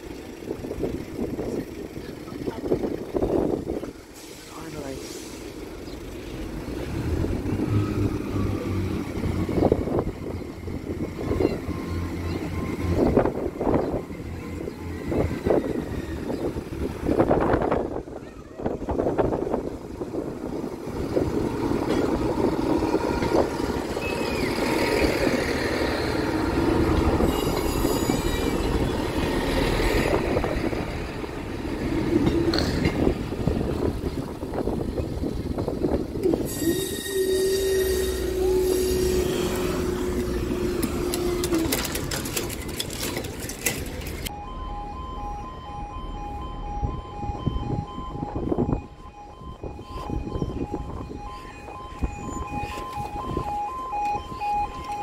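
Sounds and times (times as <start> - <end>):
train wheels on rails: 0.0 - 44.3
diesel train engine: 0.0 - 55.0
two-tone crossing alarm: 21.8 - 31.0, 36.2 - 43.1, 44.2 - 55.0.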